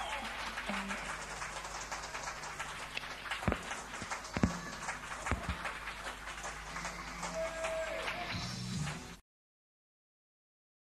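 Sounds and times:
room noise: 0.0 - 9.2
scattered knocks: 3.4 - 5.8.

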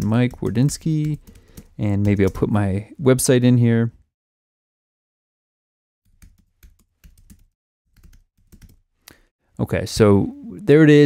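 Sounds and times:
typing on computer keyboard: 0.0 - 2.5, 6.1 - 8.8.

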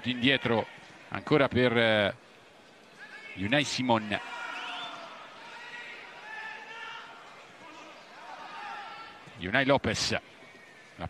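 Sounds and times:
murmur of crowd voices: 0.0 - 11.0
distant shouts: 3.0 - 9.4.

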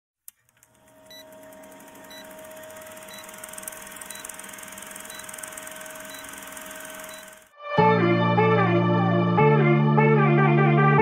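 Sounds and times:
film projector whir and rattle: 0.4 - 7.5
short high beeps: 1.1 - 1.3, 2.1 - 2.4, 3.0 - 7.4.

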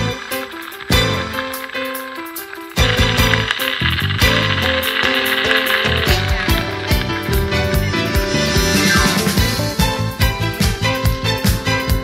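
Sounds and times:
band music with drums: 2.8 - 12.0.

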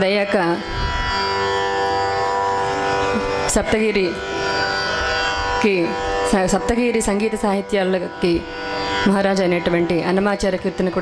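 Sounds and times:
steady music drone: 0.0 - 11.0.

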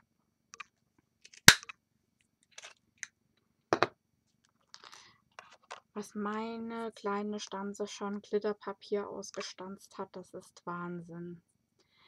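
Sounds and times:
craft punch snapping: 1.5 - 1.7.

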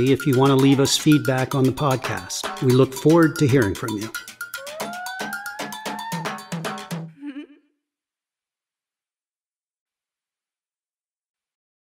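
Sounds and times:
percussive beat: 0.0 - 7.2.

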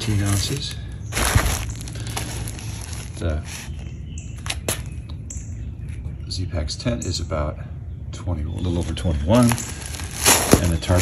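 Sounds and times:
stuff sack rustling: 0.0 - 4.8, 8.8 - 11.0.

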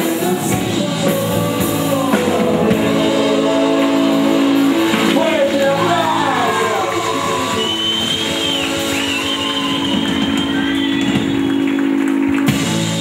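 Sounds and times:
electric guitar long held notes: 0.0 - 13.0
live rock band playing: 0.0 - 13.0.

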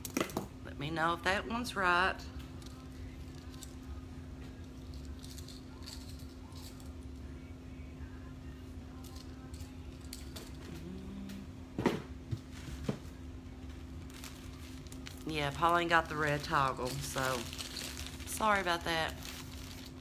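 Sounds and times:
low electrical hum: 0.0 - 20.0
necklaces clinking: 2.6 - 3.9, 4.6 - 7.1, 8.9 - 10.7, 14.1 - 20.0.

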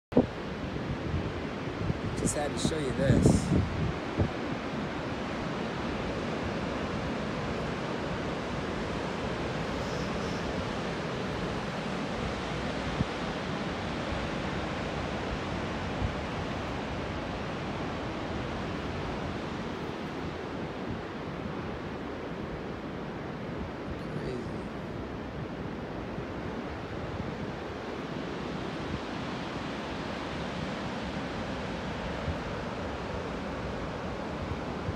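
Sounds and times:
wind: 0.1 - 34.9
ocean surf breaking: 0.3 - 34.9.

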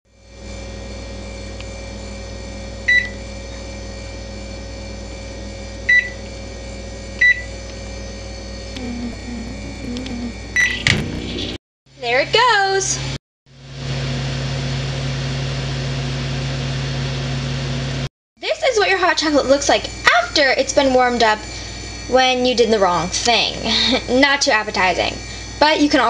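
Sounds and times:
microwave oven humming: 0.1 - 26.0.

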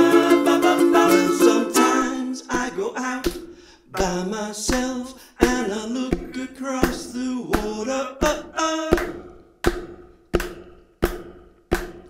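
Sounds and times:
taps on ukulele body: 1.8 - 12.0.

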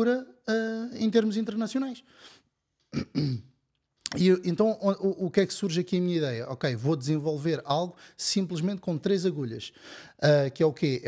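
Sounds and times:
man clearing throat with cough: 2.9 - 3.6
soft breath: 9.8 - 10.2.

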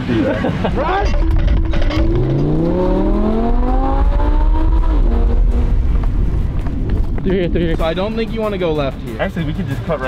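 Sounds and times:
sports car engine accelerating: 1.2 - 7.2.

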